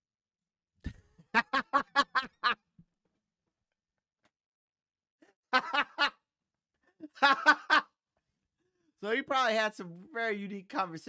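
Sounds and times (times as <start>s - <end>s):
man laughing heartily: 0.9s - 2.7s, 5.2s - 6.2s, 6.9s - 8.0s.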